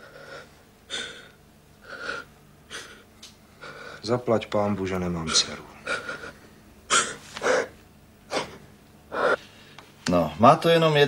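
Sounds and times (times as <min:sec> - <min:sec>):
gasping breaths: 0:00.0 - 0:04.0
woman sobbing: 0:05.8 - 0:09.4.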